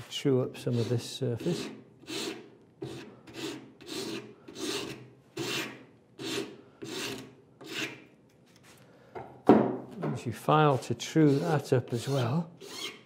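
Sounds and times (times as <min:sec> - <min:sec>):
hand rasp cutting wood: 0:00.7 - 0:08.0, 0:10.7 - 0:13.0.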